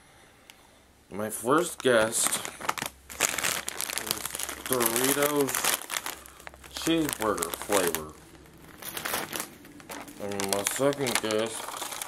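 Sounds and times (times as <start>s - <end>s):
plastic packaging crinkling: 1.6s - 12.0s.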